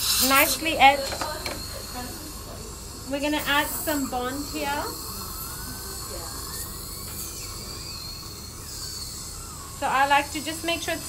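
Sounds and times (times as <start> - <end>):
dental equipment humming: 0.0 - 11.0
thin wandering whistle: 4.8 - 11.0.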